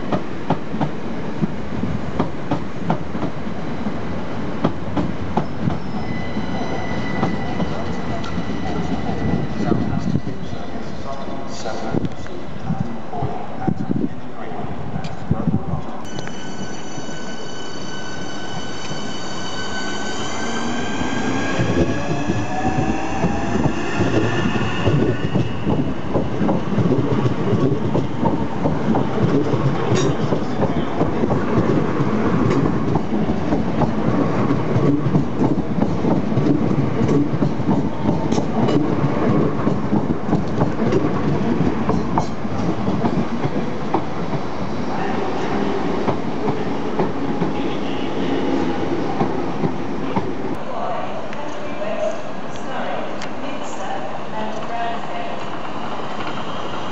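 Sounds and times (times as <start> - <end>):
train wheels rumbling: 0.0 - 14.0, 15.1 - 50.7.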